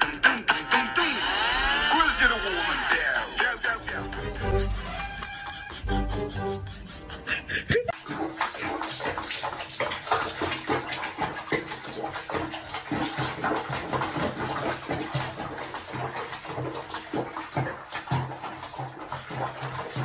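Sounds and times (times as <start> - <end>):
water splashing in a bathtub: 0.0 - 4.2, 7.9 - 20.0.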